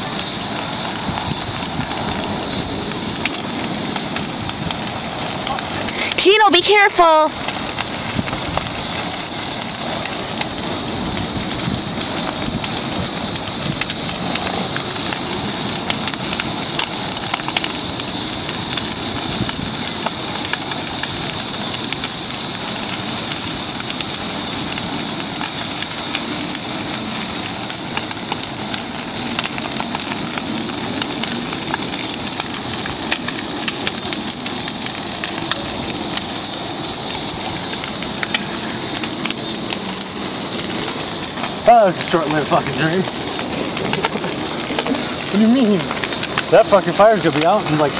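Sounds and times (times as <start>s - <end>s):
bonfire crackling and hissing: 0.0s - 47.9s.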